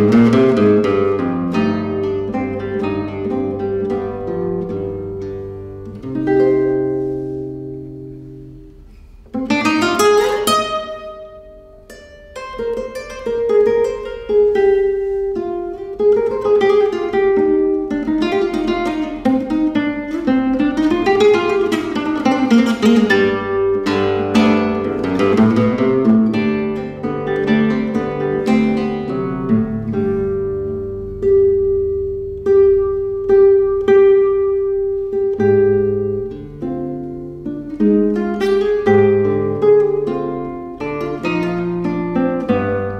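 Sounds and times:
classical guitar fingerstyle: 0.0 - 42.9.

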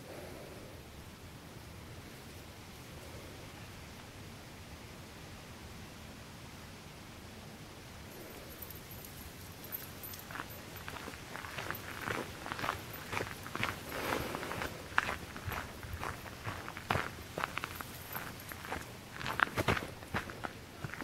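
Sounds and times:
footsteps on gravel: 9.7 - 21.0.

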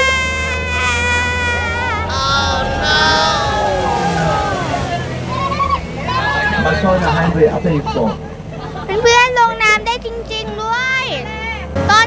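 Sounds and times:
low engine hum: 0.0 - 11.8.

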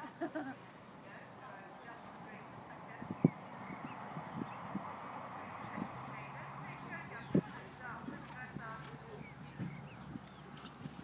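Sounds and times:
horse hooves thudding on turf: 1.8 - 11.0.

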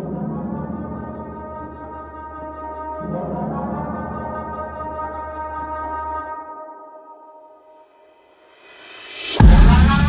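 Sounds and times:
low brass-like notes: 9.4 - 10.0.

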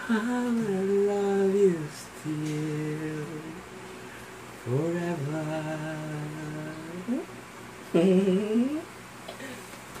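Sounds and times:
person humming mm-hmm: 7.9 - 8.9.

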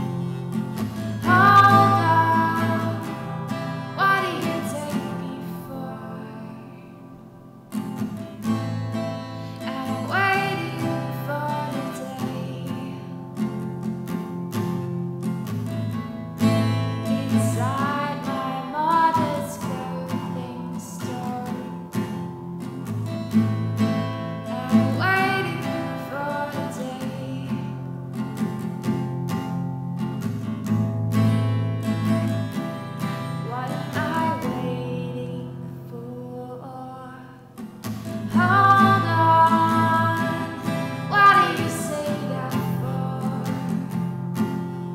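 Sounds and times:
woman singing: 0.0 - 7.2, 9.5 - 13.7, 16.7 - 22.3, 24.3 - 28.0, 33.0 - 44.2
acoustic guitar chords: 0.0 - 44.9.

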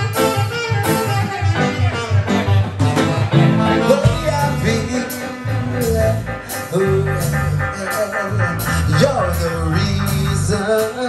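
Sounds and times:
drums keeping a beat: 0.0 - 11.0
electric bass: 0.0 - 11.0
saxophone lead: 0.0 - 11.0.

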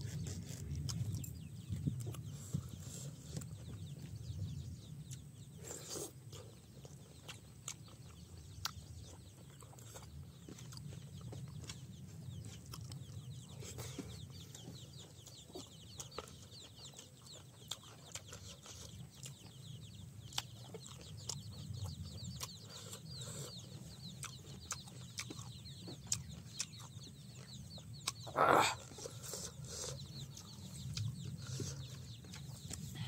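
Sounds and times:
chewing and lip smacks: 0.0 - 33.0.

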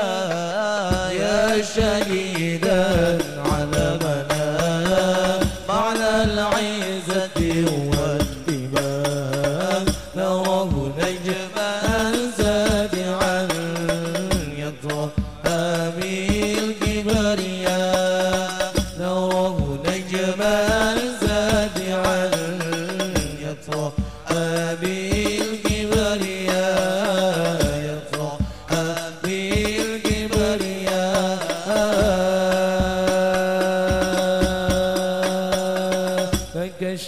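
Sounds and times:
frame drums beating: 0.0 - 36.9
men singing through a pa system: 0.0 - 37.0.

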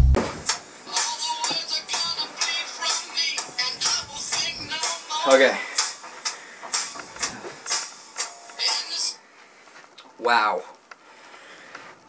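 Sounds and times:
man breathing hard: 11.0 - 12.0.

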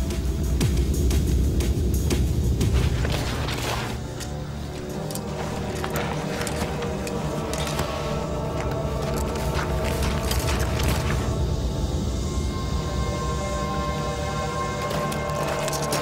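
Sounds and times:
deep low drone: 0.0 - 16.0.

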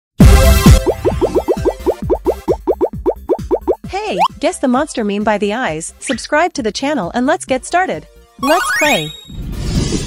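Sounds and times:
background music: 0.2 - 9.2
cartoon pop sound effects: 0.7 - 3.8.

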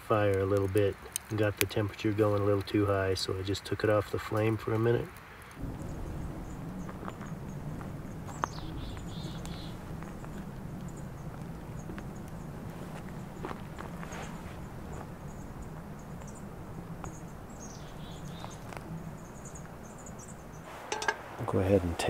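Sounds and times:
low rumble of wind: 0.0 - 22.0.

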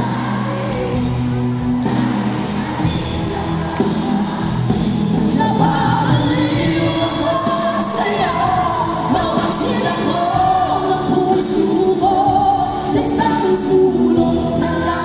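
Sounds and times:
live pop-rock band playing: 0.0 - 15.0
women singing together: 5.2 - 15.0.

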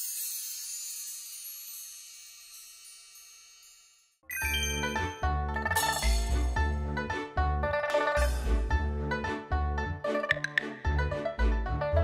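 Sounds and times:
high shimmering chimes: 0.0 - 5.2.

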